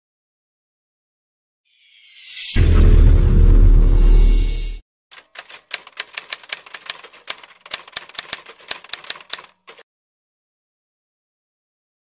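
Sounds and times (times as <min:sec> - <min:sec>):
typewriter key clacks: 0:05.1 - 0:09.8.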